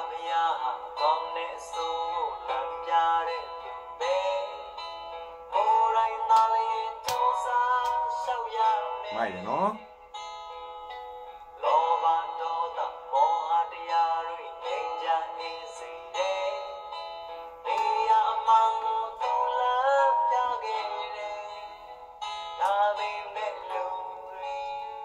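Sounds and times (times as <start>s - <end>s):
person singing: 0.0s - 4.7s, 5.5s - 9.9s, 11.6s - 16.8s, 17.6s - 21.9s, 22.6s - 25.0s
guitar accompaniment: 0.0s - 25.0s.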